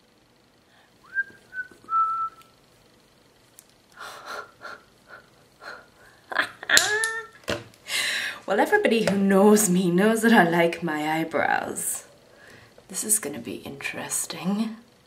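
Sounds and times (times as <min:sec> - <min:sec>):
person whistling short notes: 0:01.0 - 0:02.5.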